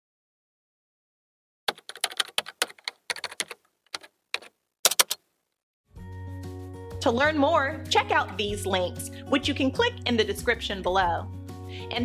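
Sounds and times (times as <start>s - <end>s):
keyboard key clicks: 1.7s - 5.2s.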